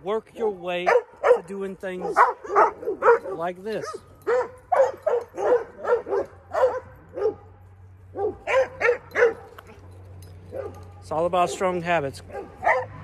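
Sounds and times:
dog barking: 0.4 - 7.5, 8.1 - 9.5, 10.5 - 13.0.

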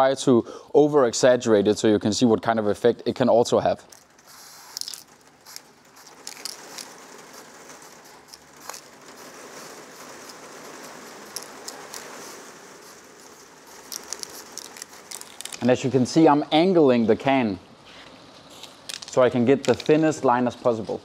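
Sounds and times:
spray paint can hissing: 4.2 - 15.6.

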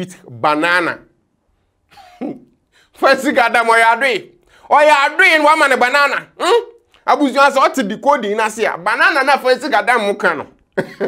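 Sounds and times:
man coughing: 1.9 - 2.5.

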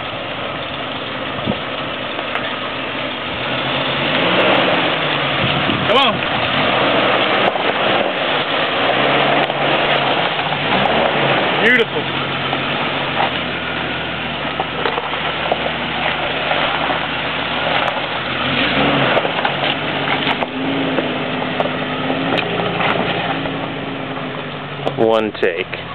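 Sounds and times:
car engine running at low revs: 0.0 - 25.9
rocks and gravel crunching under tyres: 0.0 - 25.9.

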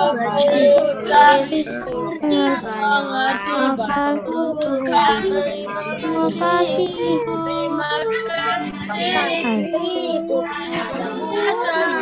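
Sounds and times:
child singing: 0.0 - 12.0
music backing track: 0.0 - 12.0.

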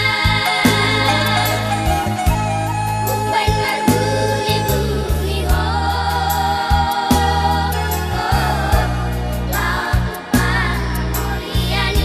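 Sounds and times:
bass line: 0.0 - 12.0
percussion: 0.0 - 12.0
voices singing together: 0.0 - 12.0.

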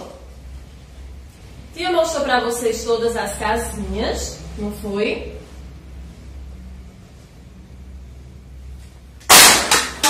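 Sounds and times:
very loud bang: 9.2 - 10.0.

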